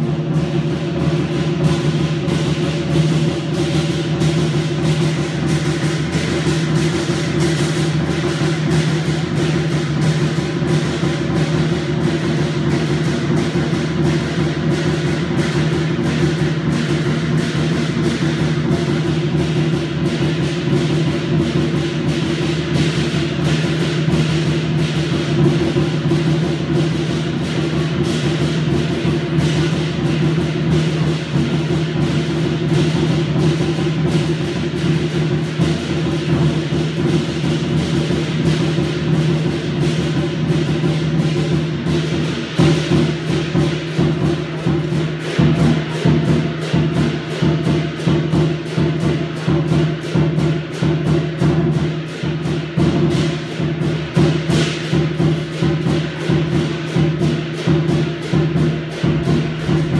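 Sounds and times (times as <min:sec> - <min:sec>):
big drum beating fast: 0:00.0 - 0:59.9
cymbals crashing: 0:00.0 - 0:59.9.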